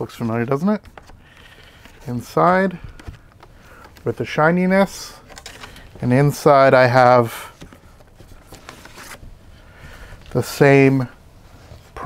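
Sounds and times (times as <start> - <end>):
card and paper scraping: 7.4 - 9.3.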